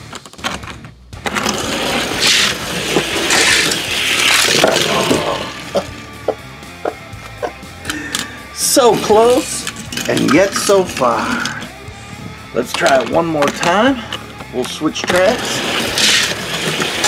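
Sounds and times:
toy cars clacking: 0.1s - 5.9s, 9.0s - 11.7s, 12.7s - 17.0s
toy car wheels whirring on plastic: 1.2s - 5.9s, 15.0s - 17.0s.

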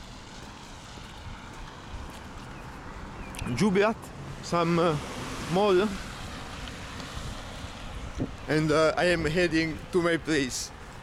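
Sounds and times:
street traffic: 0.0s - 11.0s
wind on microphone: 7.0s - 9.9s.

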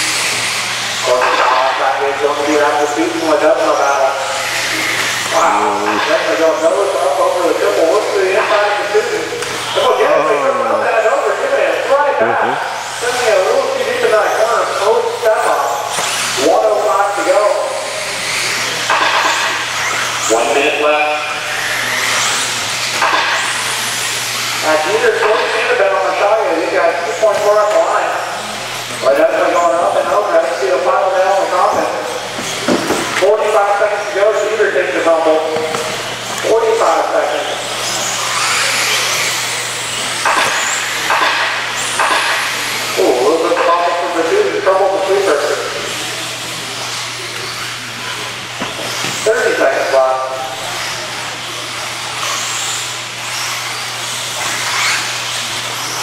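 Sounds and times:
man calling race: 0.0s - 18.9s, 19.8s - 22.8s, 23.6s - 48.1s, 48.9s - 56.0s
steady low hum: 0.0s - 52.2s
rc cars whining past: 0.0s - 56.0s.

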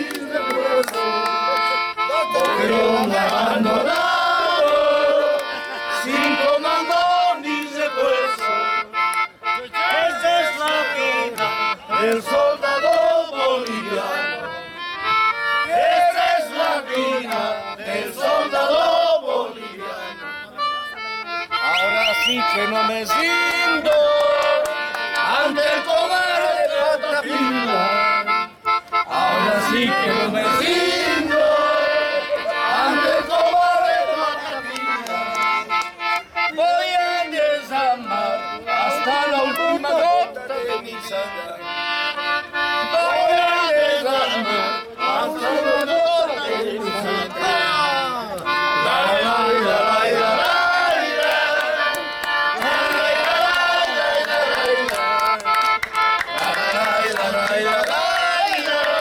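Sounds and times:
hand claps: 0.0s - 13.8s, 16.9s - 17.5s, 23.2s - 25.6s, 34.6s - 36.4s, 50.4s - 59.0s
button accordion playing chords: 0.0s - 59.0s.

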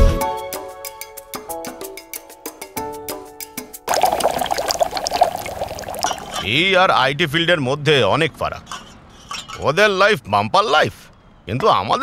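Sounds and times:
liquid pouring: 3.9s - 6.5s.

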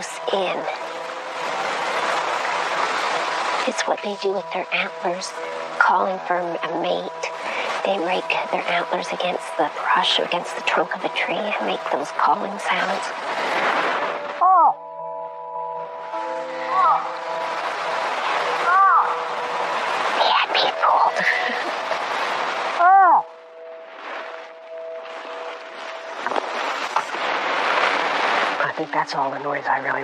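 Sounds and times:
soft background music: 0.0s - 30.0s.

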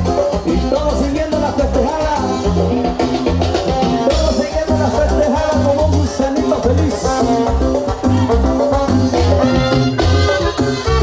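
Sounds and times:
latin dance band music: 0.0s - 11.0s.

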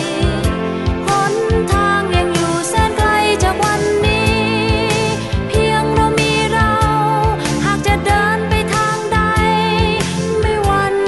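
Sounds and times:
pop song with singing: 0.0s - 11.0s.

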